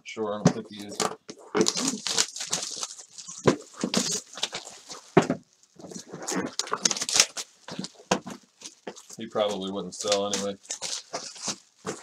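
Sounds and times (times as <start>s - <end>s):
cardboard rustling: 0.4s - 12.0s
cardboard boxes knocking on desk: 5.2s - 5.4s.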